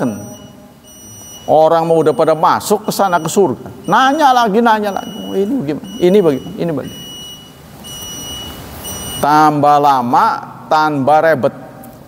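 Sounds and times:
high-pitched electronic tone: 0:00.0 - 0:09.3
steady low hiss: 0:00.0 - 0:12.0.

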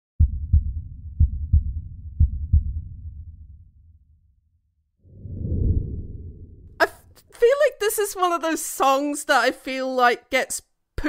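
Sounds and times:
deep heartbeat thumps: 0:00.2 - 0:03.6
low rumble: 0:05.1 - 0:06.8.

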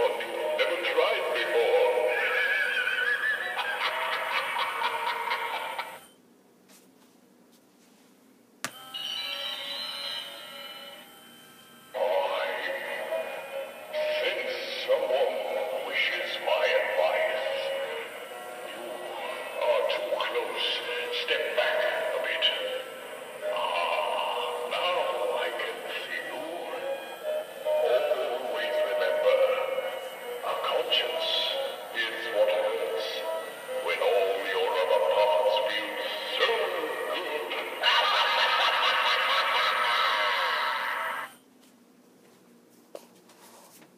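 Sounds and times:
held musical chord from speaker: 0:11.9 - 0:37.8.

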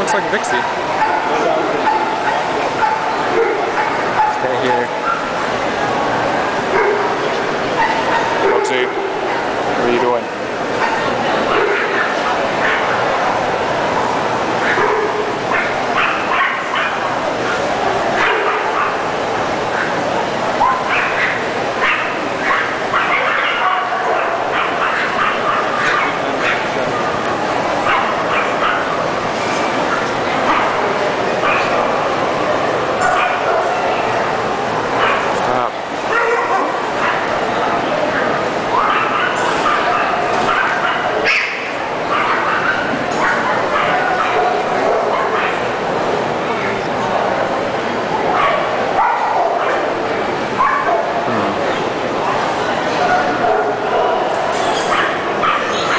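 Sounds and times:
dogs barking and yipping: 0:00.0 - 0:05.6, 0:06.6 - 0:09.6, 0:10.7 - 0:45.9, 0:48.1 - 0:51.3, 0:52.9 - 0:55.9
crowd chatter: 0:00.0 - 0:55.9.

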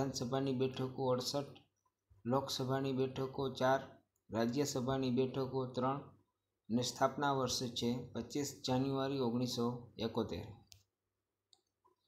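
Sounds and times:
man speaking: 0:00.0 - 0:10.7.

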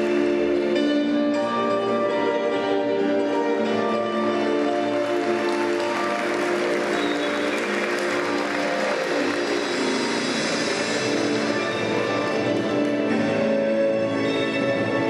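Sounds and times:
music over arena speakers: 0:00.0 - 0:15.0
audience applauding: 0:04.5 - 0:13.2.

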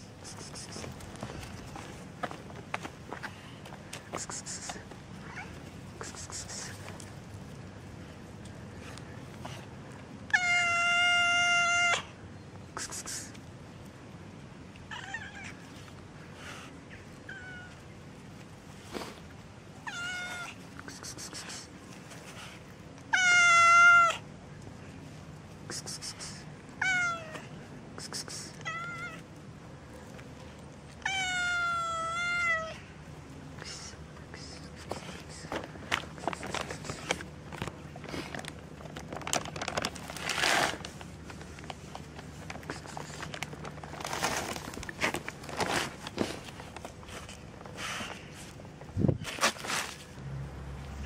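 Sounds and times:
faint scuffs and clicks: 0:00.1 - 0:07.6
cats meowing: 0:10.3 - 0:12.1, 0:17.2 - 0:17.8, 0:19.8 - 0:20.6, 0:23.1 - 0:24.2, 0:26.8 - 0:27.6, 0:28.5 - 0:29.2, 0:31.0 - 0:32.8.

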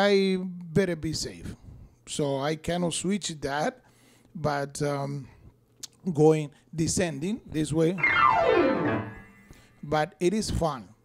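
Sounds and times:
piano descending glissando: 0:08.0 - 0:09.6.

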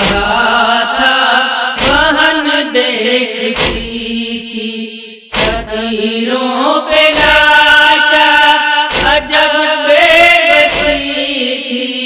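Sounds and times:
sharp thump: 0:00.0 - 0:00.4, 0:01.8 - 0:02.2, 0:03.6 - 0:04.1, 0:05.3 - 0:05.8, 0:07.1 - 0:07.6, 0:08.9 - 0:09.4, 0:10.7 - 0:11.1
voices chanting a lament: 0:00.0 - 0:12.0.

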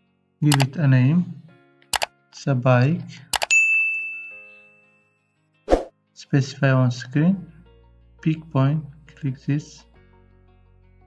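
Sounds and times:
quick clicks: 0:03.3 - 0:03.5
notification bell ding: 0:03.4 - 0:04.9.

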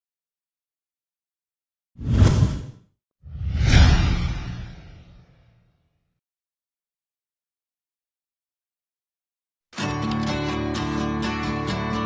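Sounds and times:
whoosh sound effects: 0:02.0 - 0:05.4
deep rumble: 0:03.3 - 0:05.4.

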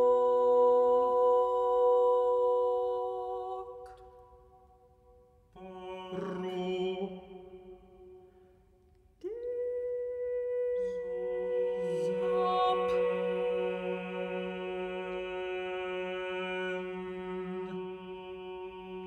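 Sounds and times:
a cappella quartet singing chords: 0:00.0 - 0:04.5, 0:05.6 - 0:08.1, 0:09.3 - 0:19.0.

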